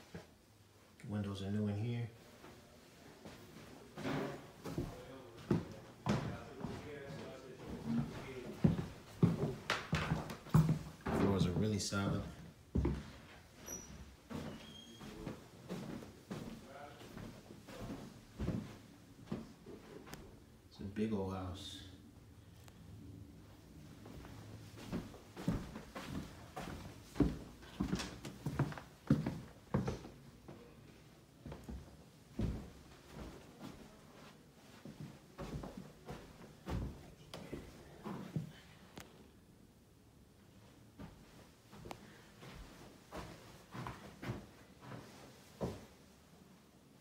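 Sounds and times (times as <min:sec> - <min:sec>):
footsteps on hardwood floor: 0:03.2 - 0:20.3, 0:23.9 - 0:30.8, 0:31.4 - 0:38.6, 0:40.9 - 0:46.0.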